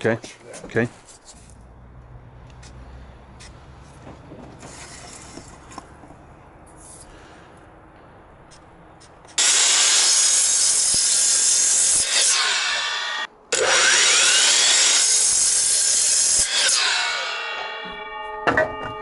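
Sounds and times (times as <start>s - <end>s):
miter saw cutting wood: 9.4s - 18.1s
saw blade winding down whine: 12.0s - 15.4s, 16.0s - 18.1s.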